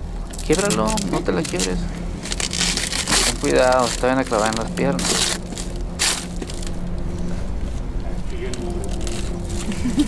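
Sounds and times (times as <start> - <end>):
steady low hum: 0.0 - 10.0
container cracking open: 0.3 - 6.8.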